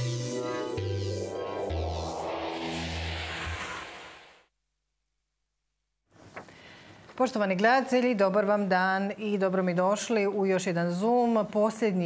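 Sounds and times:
rushing noise sweep: 0.0 - 4.5
synth bass notes: 0.0 - 4.5.

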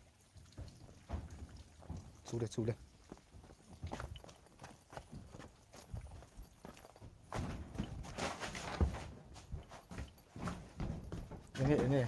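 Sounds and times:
footsteps: 0.4 - 12.0.

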